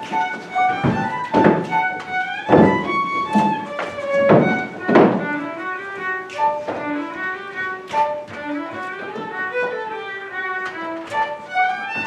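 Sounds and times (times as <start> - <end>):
fiddle melody: 0.0 - 12.0
heavy thumps: 0.0 - 12.0.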